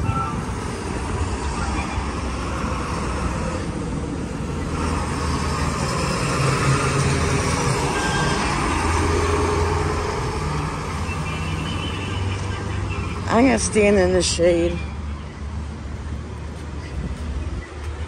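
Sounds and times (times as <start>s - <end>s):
tow truck engine passing: 0.0s - 17.7s
road traffic passing: 0.0s - 18.0s.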